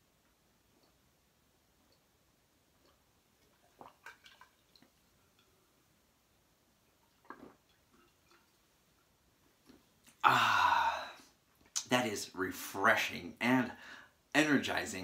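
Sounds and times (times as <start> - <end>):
man gulping from a jar: 2.8 - 5.5, 6.9 - 11.9.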